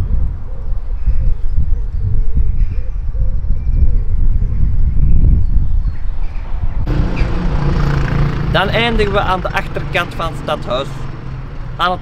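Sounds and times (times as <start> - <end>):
gusty wind on microphone: 0.0 - 9.7.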